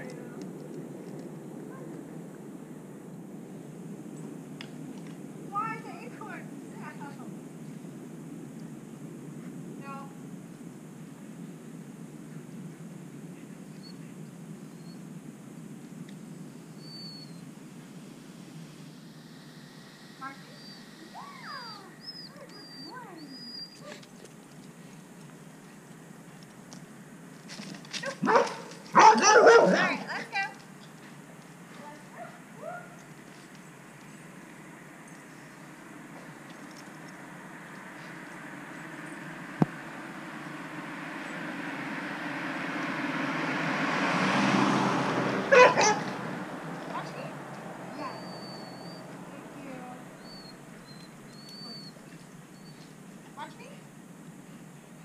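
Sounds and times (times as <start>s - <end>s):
dog barking: 28.0s - 30.2s, 32.1s - 33.0s, 45.5s - 46.1s.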